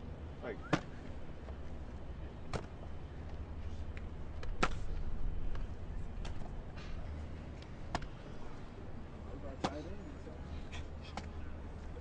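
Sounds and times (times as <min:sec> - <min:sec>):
low steady rumble: 0:00.0 - 0:12.0
football slapping into hands: 0:00.6 - 0:01.0.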